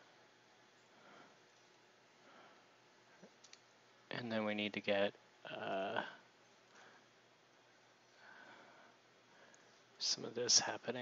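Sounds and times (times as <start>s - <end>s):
faint short clicks: 3.2s - 3.7s.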